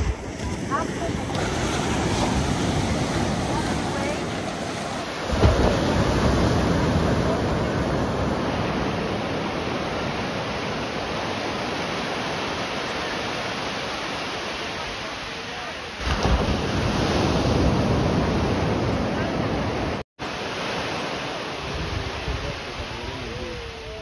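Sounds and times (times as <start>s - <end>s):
ocean surf breaking: 0.0s - 24.0s.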